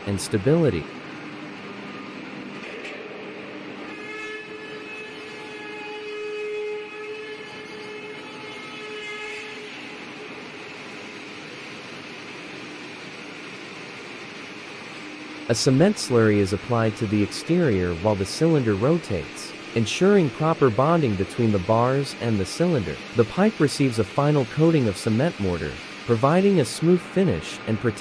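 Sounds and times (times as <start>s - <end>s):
machinery running: 14.8s - 28.0s.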